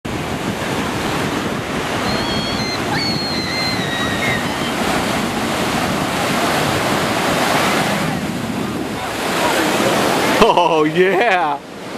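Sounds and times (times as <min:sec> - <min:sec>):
wind buffeting microphone: 0:00.1 - 0:10.4
ocean surf breaking: 0:00.1 - 0:11.9.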